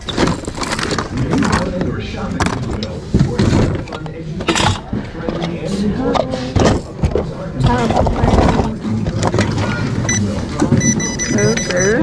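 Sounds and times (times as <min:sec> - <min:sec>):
high electronic beeps: 0:10.1 - 0:12.0.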